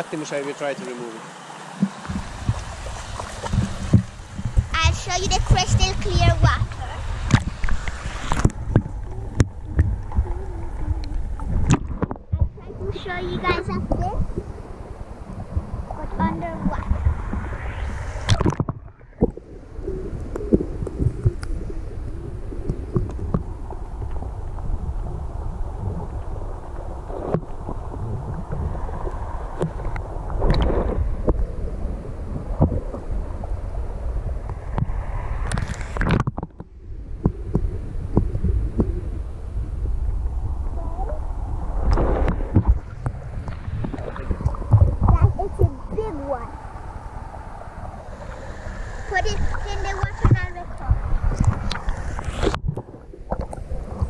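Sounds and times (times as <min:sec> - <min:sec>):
muffled water sloshing: 0:00.0 - 0:54.0.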